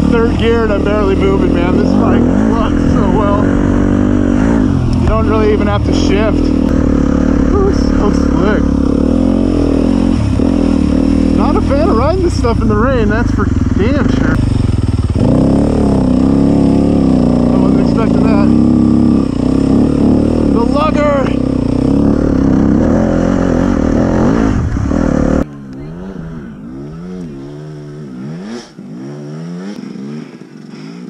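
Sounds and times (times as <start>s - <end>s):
distant dirt bike engine revving: 0.0s - 31.0s.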